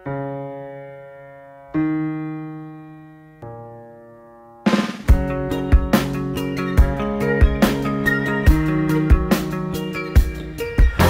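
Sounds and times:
slow keyboard chords: 0.0s - 11.0s.

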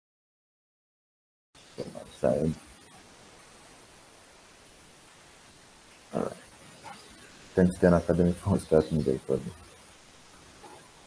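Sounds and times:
faint room tone hiss: 1.6s - 11.0s
person speaking a word: 6.2s - 6.4s, 7.6s - 9.6s.

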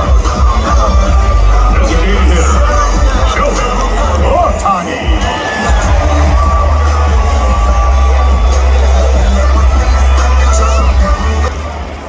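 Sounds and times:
crowd cheering: 0.0s - 12.0s
stadium music with heavy bass: 0.0s - 12.0s.

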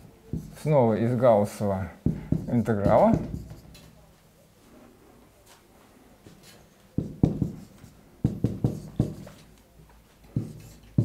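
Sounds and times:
marker writing on a whiteboard: 0.3s - 0.8s, 2.0s - 4.1s, 6.4s - 11.0s.

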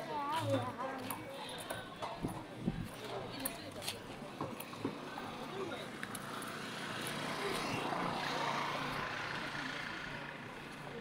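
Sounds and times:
vehicle passing: 6.2s - 11.0s.

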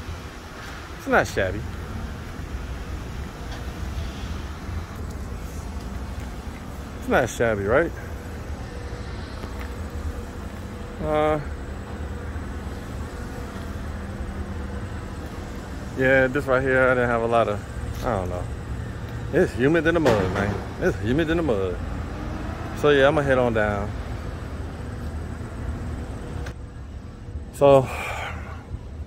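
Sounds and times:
faint hiss: 0.0s - 13.9s
vehicle engine idling: 0.0s - 28.5s.

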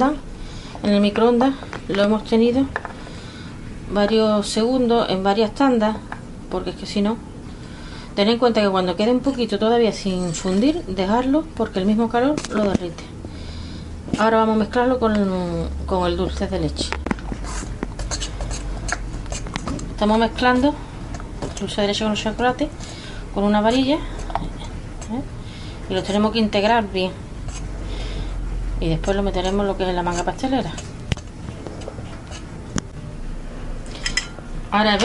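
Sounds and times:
metal spoon scraping glass bowl: 10.0s - 10.9s, 17.4s - 19.5s, 27.4s - 27.7s, 29.0s - 30.9s, 31.8s - 32.5s, 33.9s - 34.4s
whisk scraping thick mix in bowl: 17.2s - 22.9s, 27.4s - 27.8s, 29.0s - 32.6s.

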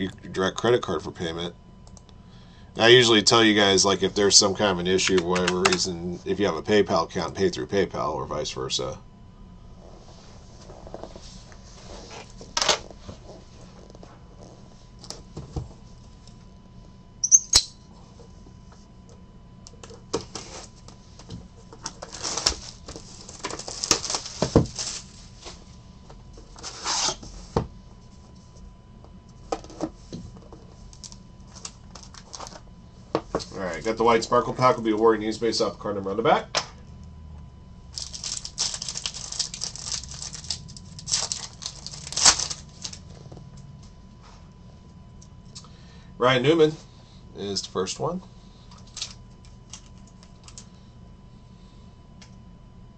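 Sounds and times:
foil wrapper crinkling and tearing: 21.8s - 25.2s, 37.9s - 43.1s, 48.8s - 50.6s.

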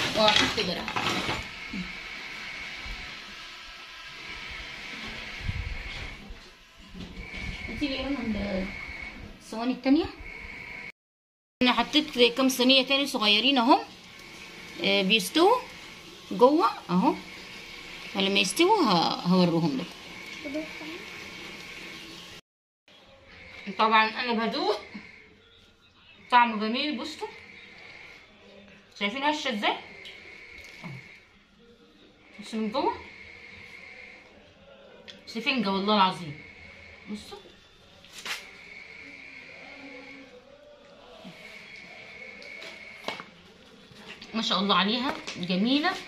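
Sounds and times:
oven hissing: 0.0s - 10.9s, 11.8s - 22.4s, 29.2s - 31.2s, 32.4s - 34.4s, 35.4s - 43.2s.

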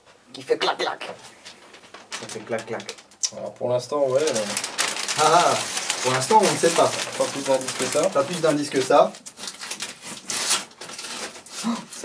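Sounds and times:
paper wrapping rustling: 1.1s - 12.0s.

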